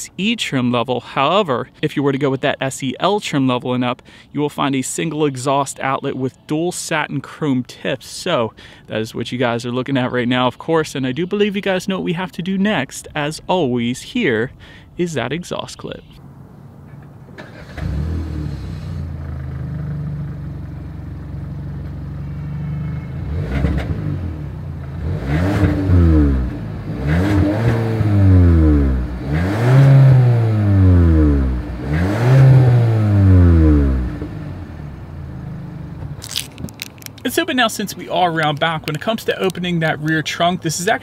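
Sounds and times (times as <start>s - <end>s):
car engine starting and idling: 16.2s - 41.0s
car engine revving: 17.4s - 36.6s.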